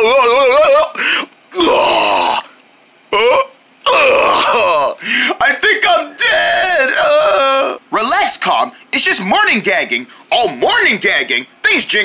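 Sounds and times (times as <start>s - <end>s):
person gagging and groaning: 0.0s - 5.4s, 6.2s - 7.8s.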